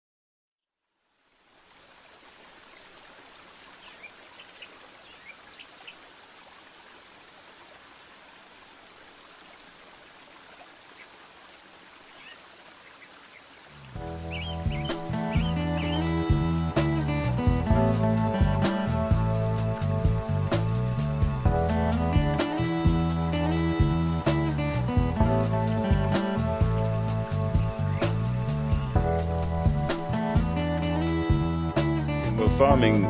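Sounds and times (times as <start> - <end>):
flowing water: 0.9 - 33.0
birds chirping: 2.6 - 6.2, 10.7 - 33.0
guitar music: 14.0 - 33.0.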